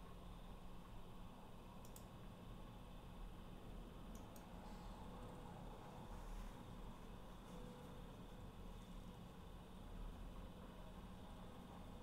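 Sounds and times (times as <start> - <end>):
faint clicks: 1.8 - 2.1.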